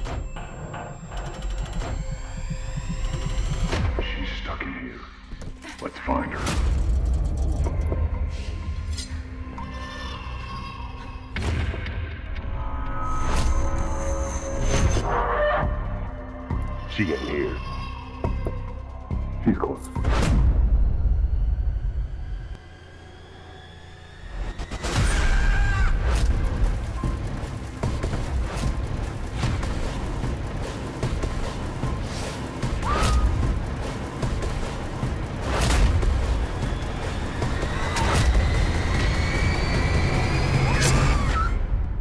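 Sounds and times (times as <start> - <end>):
deep rumbling drone: 0.0 - 4.5.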